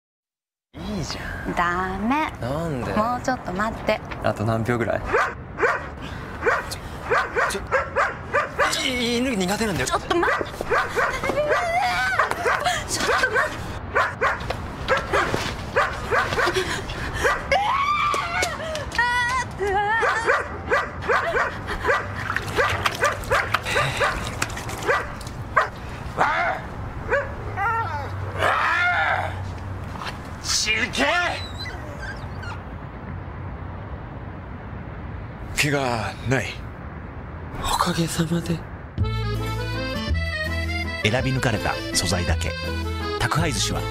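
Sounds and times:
large dog barking: 5.1s - 8.8s, 12.2s - 16.5s, 20.3s - 24.2s
dog crying: 10.2s - 14.4s, 24.8s - 29.4s, 31.0s - 32.7s.

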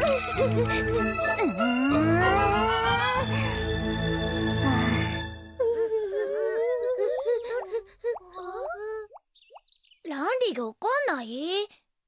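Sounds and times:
background music: 0.0s - 6.6s.

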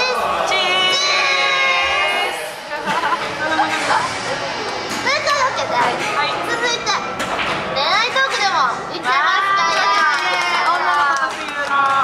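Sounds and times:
young women chattering and laughing: 2.6s - 4.2s.

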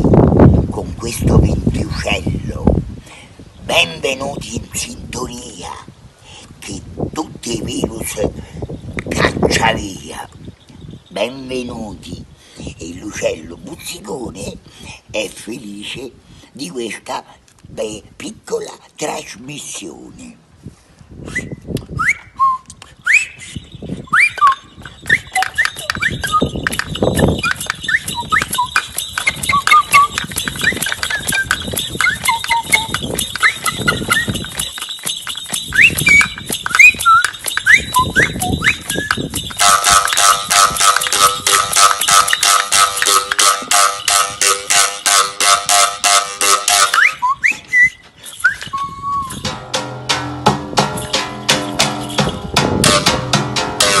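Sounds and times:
bird-call whistle chirps and trills: 21.2s - 44.2s, 46.7s - 49.5s
harsh buzzing tone with rattle: 24.7s - 47.1s, 49.3s - 54.0s
rapid even clicking beat: 25.1s - 47.0s, 49.4s - 54.0s.

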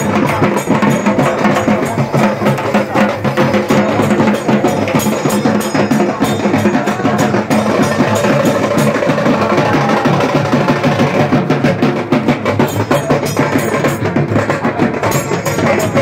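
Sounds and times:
clattering percussion: 0.0s - 16.0s
fast dense drumming: 0.0s - 16.0s.

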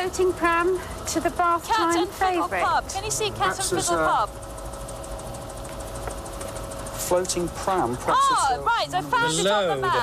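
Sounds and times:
faint held whine: 0.0s - 10.0s
helicopter engine and rotor rumble: 0.0s - 10.0s.

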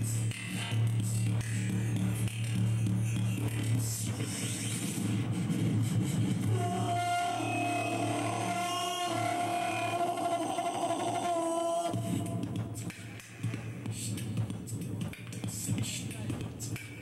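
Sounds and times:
low electronic drone: 0.0s - 12.9s
processed held vocal tone: 0.0s - 17.0s.

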